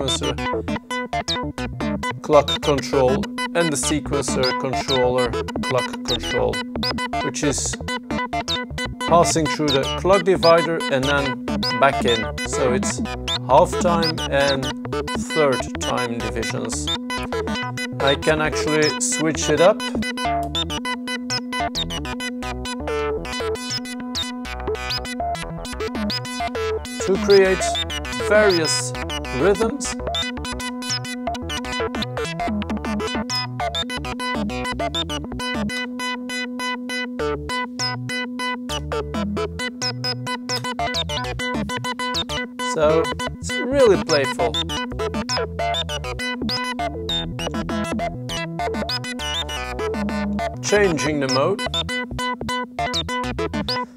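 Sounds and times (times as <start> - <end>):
low bass notes: 0.0 - 36.0, 37.2 - 53.8
steady held synth tone: 0.0 - 53.9
short pitched synth notes: 2.1 - 32.0.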